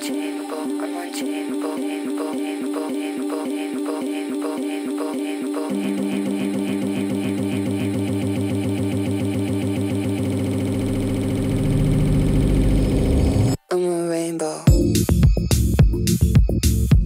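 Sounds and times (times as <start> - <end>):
electronic dance music: 0.0 - 13.6, 14.7 - 17.0.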